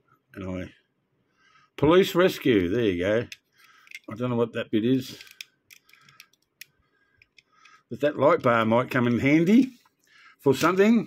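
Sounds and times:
toy truck clicks and scrapes: 5.1 - 7.8.

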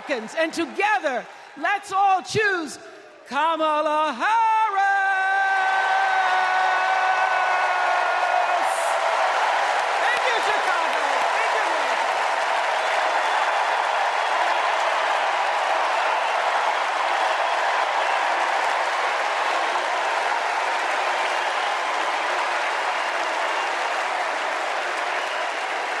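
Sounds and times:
crowd applauding: 0.0 - 2.2, 5.0 - 26.0.

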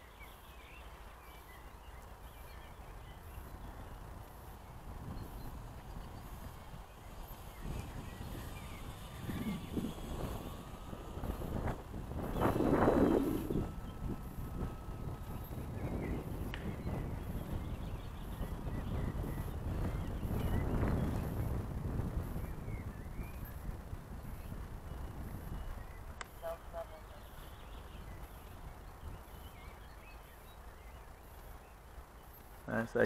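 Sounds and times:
model plane motor whining overhead: 0.0 - 33.0
wind on microphone: 1.6 - 32.9.

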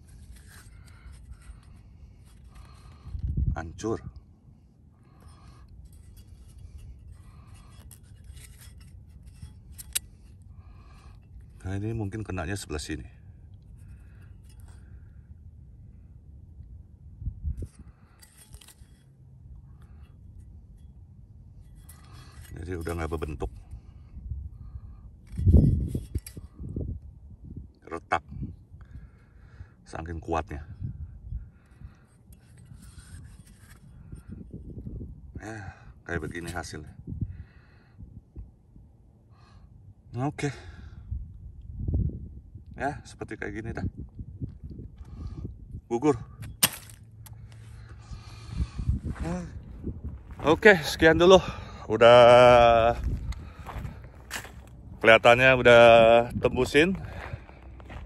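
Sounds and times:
rustling scrapes of handling: 0.0 - 3.1, 5.1 - 10.4, 32.3 - 34.3
wind rumble on microphone: 0.0 - 58.0.

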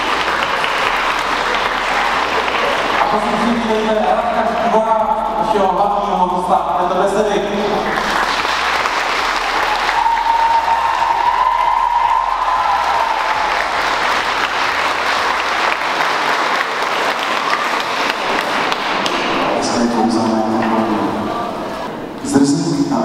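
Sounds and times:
audience applauding: 0.0 - 22.0
person speaking: 19.4 - 23.0.

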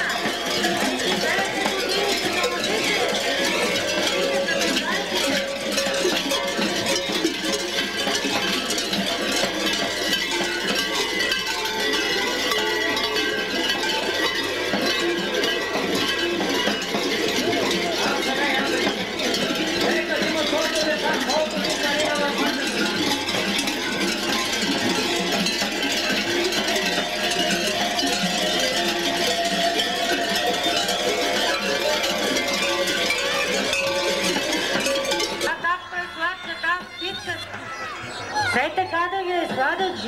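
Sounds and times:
large bells jangling: 0.0 - 40.0.

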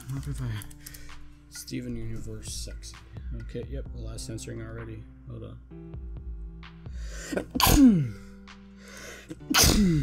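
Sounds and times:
quiet background music: 0.0 - 10.0
person sneezing: 7.2 - 8.3, 9.3 - 10.0.

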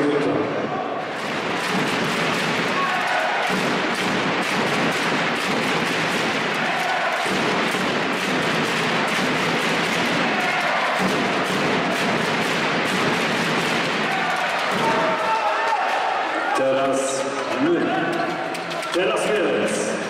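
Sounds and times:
dense crowd noise: 0.0 - 20.0
drums beating: 1.0 - 16.2.

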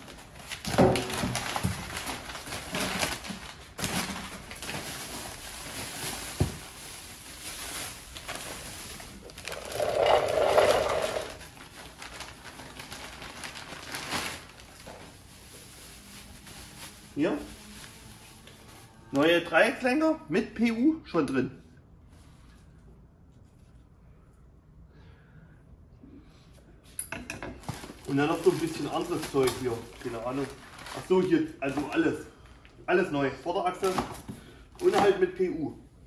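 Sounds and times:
plastic bag crinkling: 0.0 - 18.9, 27.6 - 32.7
packing paper rustling: 0.0 - 19.0, 27.6 - 32.7, 33.8 - 35.0.

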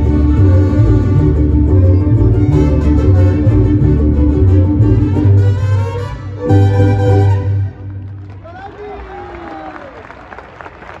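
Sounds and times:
audience applauding: 7.7 - 11.0.

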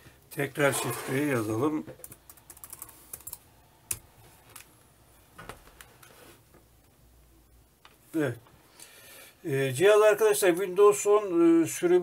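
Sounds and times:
laptop keys clicking: 2.0 - 4.0.

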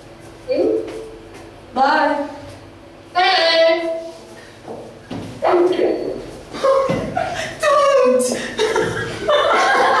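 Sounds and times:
boy laughing: 6.6 - 10.0.

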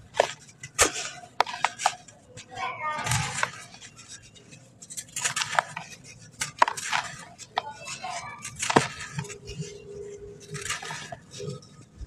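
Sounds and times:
hands crumbling dry sand: 0.0 - 12.0.

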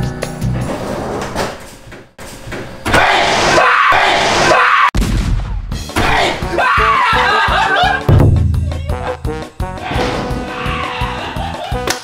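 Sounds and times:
man screaming: 6.1 - 7.6, 9.9 - 11.4.

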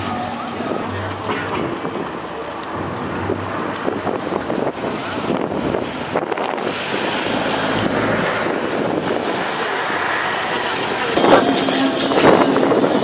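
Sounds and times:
crowd noise: 0.0 - 13.0
wind on microphone: 2.8 - 13.0.

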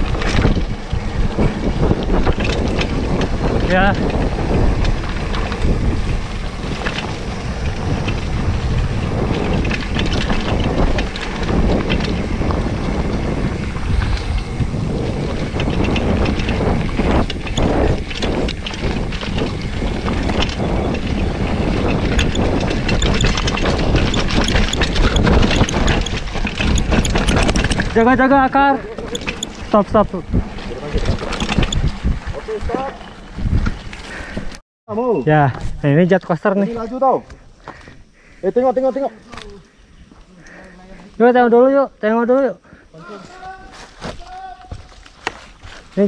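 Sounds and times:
bike rattling and knocking: 0.0 - 34.6, 35.3 - 46.0
wind rush on microphone: 0.0 - 34.6
bike tyres rolling on dirt: 0.0 - 46.0.

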